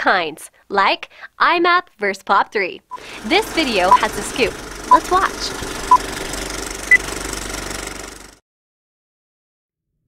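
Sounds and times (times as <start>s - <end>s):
film projector clatter: 3.0s - 8.4s.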